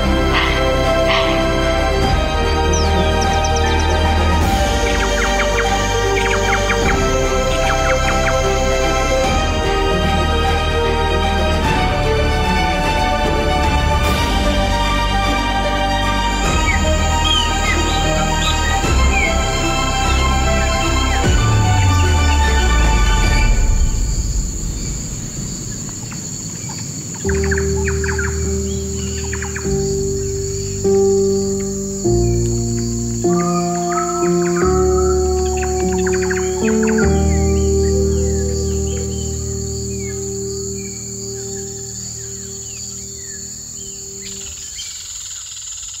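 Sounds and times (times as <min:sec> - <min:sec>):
birds chirping: 0:00.0 - 0:46.0
insects trilling: 0:00.0 - 0:46.0
slow sustained music chords: 0:00.0 - 0:46.0.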